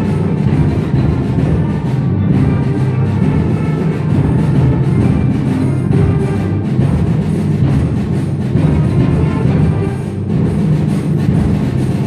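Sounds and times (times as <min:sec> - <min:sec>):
timpani roll: 0:00.0 - 0:12.0.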